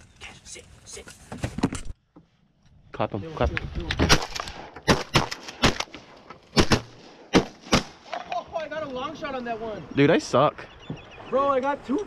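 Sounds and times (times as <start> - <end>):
shotgun blasts: 4.0 - 8.1.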